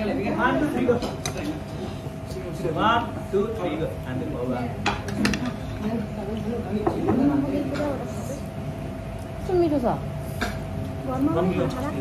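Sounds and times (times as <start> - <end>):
table chatter: 0.0 - 12.0.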